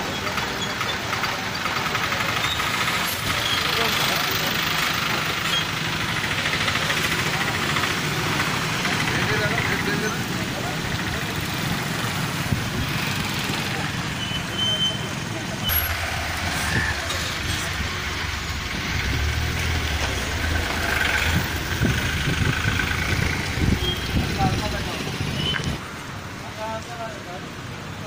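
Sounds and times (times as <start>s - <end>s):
people talking: 0.0s - 25.8s, 26.4s - 28.0s
motorbike and car engines: 0.0s - 28.0s.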